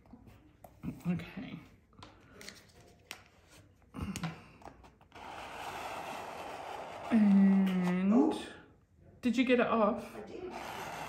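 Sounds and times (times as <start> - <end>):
card scraping tissue paper: 5.1 - 8.0.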